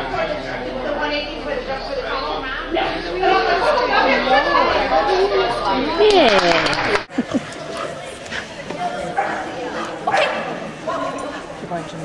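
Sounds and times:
dog barking: 0:10.1 - 0:11.2.

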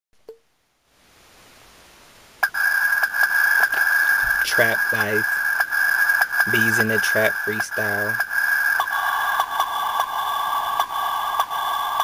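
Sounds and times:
steady hiss: 0:00.3 - 0:12.0.

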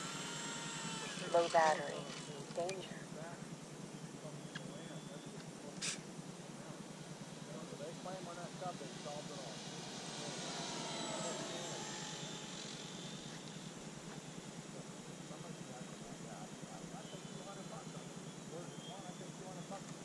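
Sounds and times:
model airplane motor whine: 0:00.0 - 0:03.2, 0:06.9 - 0:20.0.

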